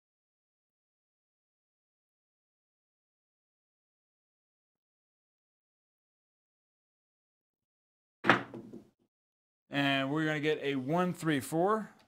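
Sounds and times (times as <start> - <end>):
dice knocking and clattering on table: 8.2 - 8.9.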